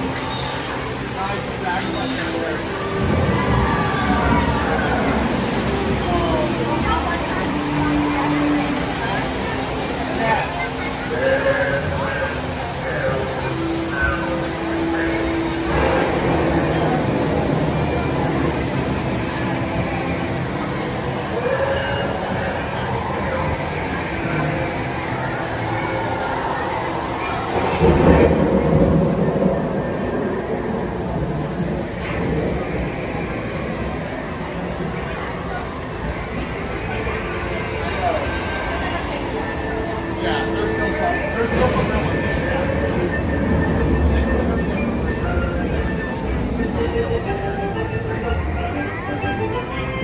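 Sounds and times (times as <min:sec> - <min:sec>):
faint voices: 0:00.0 - 0:50.0
low rumble and hiss: 0:00.0 - 0:50.0.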